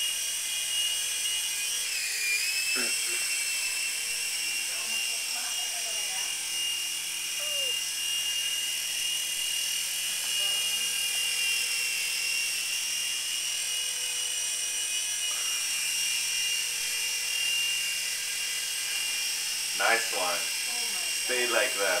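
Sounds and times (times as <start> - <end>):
toy helicopter motor whine: 0.0 - 22.0.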